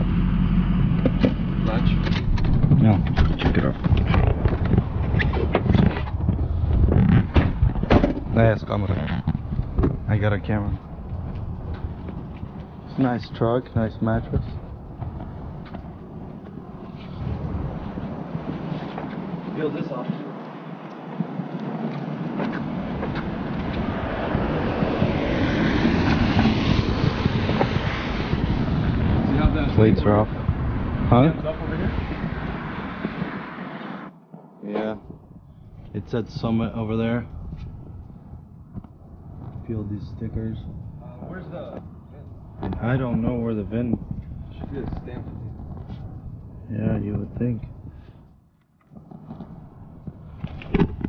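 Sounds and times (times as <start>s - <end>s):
low rumble: 0.0s - 51.0s
camera handling knocks and bumps: 2.2s - 8.3s
car tyres hissing on wet street: 23.8s - 29.6s, 30.9s - 34.1s.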